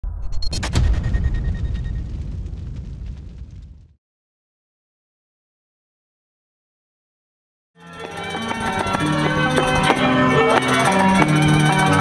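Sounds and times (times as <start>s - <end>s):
deep boom: 0.0s - 4.0s.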